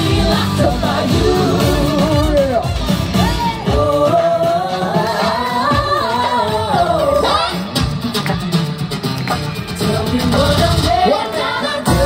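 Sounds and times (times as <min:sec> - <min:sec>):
live pop song with band: 0:00.0 - 0:12.0.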